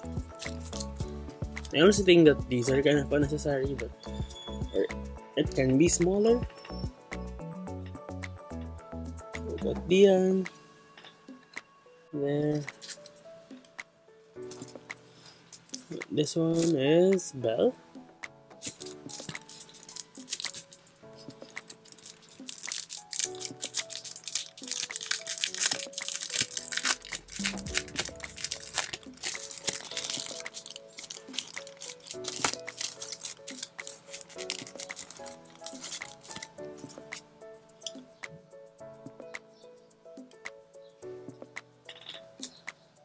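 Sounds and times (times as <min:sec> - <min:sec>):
soft instrumental music: 0:00.0 - 0:43.0
plastic packaging crinkling: 0:18.6 - 0:37.2.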